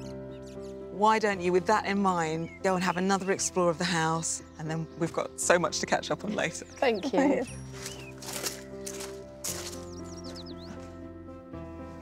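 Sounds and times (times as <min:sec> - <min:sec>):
music of sustained chords: 0:00.0 - 0:12.0.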